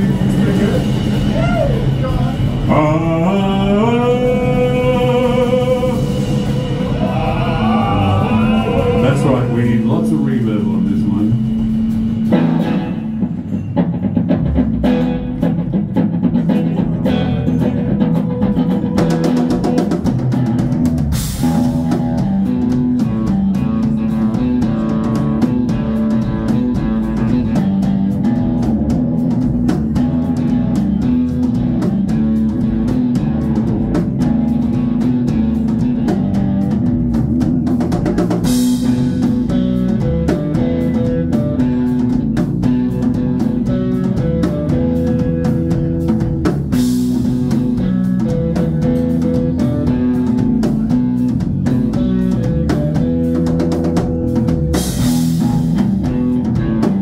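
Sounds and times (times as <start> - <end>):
drum kit: 0.0 - 57.0
electric bass: 0.0 - 57.0
electric guitar: 0.0 - 57.0.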